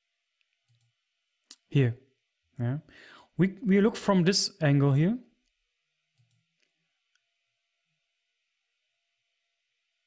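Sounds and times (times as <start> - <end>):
computer mouse clicks: 0.4 - 0.9, 6.1 - 6.7
person speaking: 1.5 - 2.0, 2.6 - 5.4.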